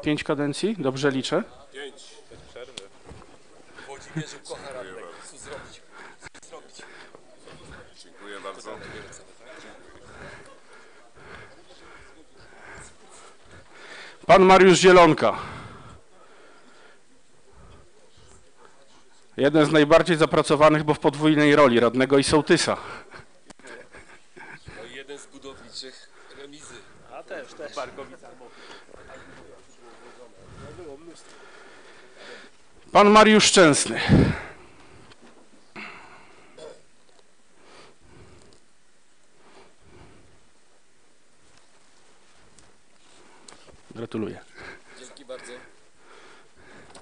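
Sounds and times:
faint voices talking: 1.4s - 14.2s.

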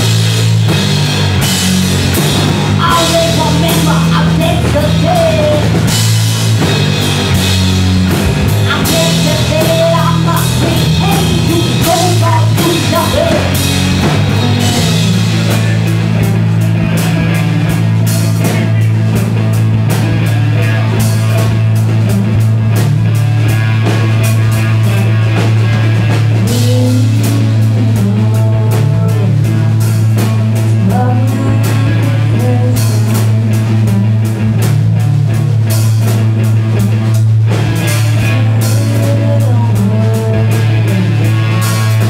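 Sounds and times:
drum kit and cymbal hits: 0.0s - 27.6s
bass guitar: 0.0s - 42.0s
electric guitar: 0.0s - 42.0s
person singing: 2.8s - 6.0s, 8.6s - 16.0s, 26.4s - 34.1s, 38.1s - 42.0s.

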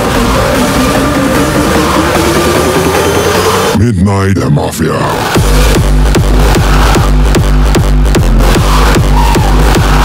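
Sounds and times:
sustained deep bass: 0.0s - 10.0s
heavy kick drum: 5.4s - 10.0s.

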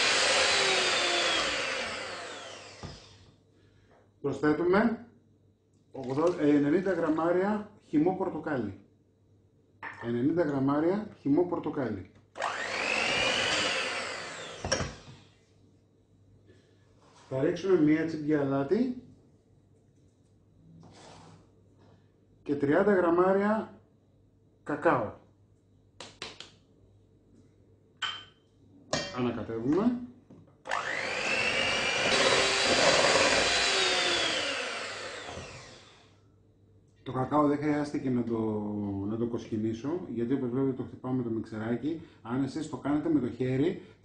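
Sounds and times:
electric hand mixer whining: 0.0s - 3.2s, 12.4s - 15.3s, 30.7s - 36.1s.

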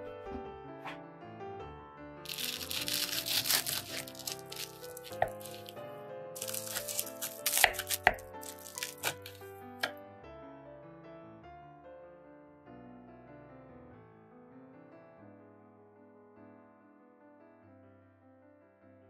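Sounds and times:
soft background piano music: 0.0s - 19.0s
knife sawing through bread crust: 2.3s - 5.8s, 6.4s - 9.4s.

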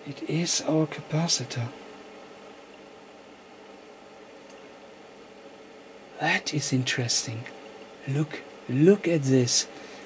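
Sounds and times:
faint steady hiss: 0.0s - 10.0s
tiny tick: 4.4s - 4.6s.

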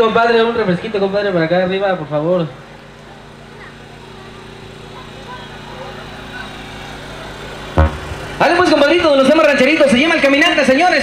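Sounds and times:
steady low hum: 2.5s - 10.3s
murmur of voices: 2.6s - 9.1s.

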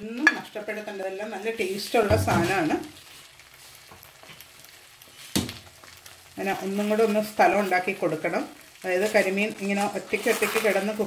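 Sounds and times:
fish sizzling in a pan: 0.0s - 11.0s
small crackles: 0.0s - 11.0s.

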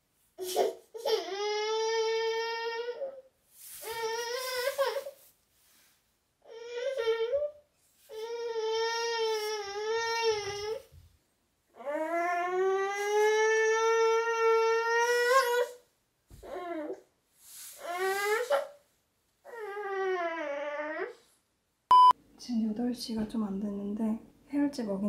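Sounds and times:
short beep: 21.9s - 22.2s.

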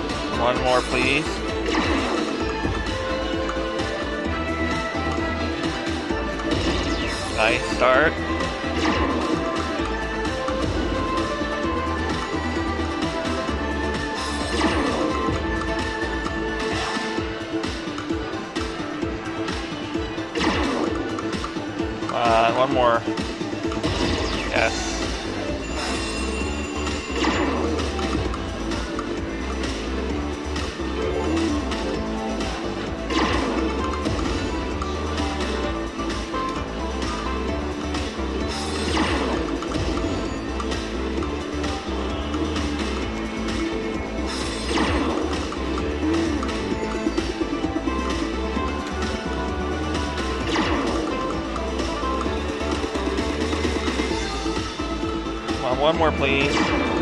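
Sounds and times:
slot machine bonus music: 0.0s - 57.0s.

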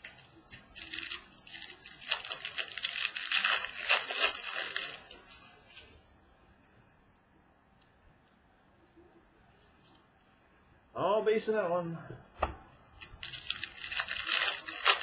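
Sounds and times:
foil wrapper tearing and crinkling: 0.0s - 5.6s, 13.0s - 15.0s.

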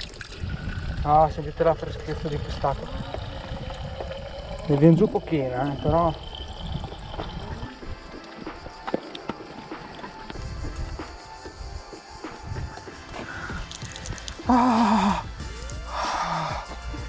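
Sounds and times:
water trickling into bottle: 0.0s - 10.3s, 13.2s - 16.7s.

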